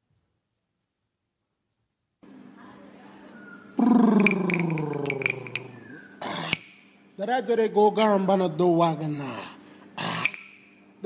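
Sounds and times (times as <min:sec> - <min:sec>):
man's gravelly vocal call: 0:03.8 - 0:05.8.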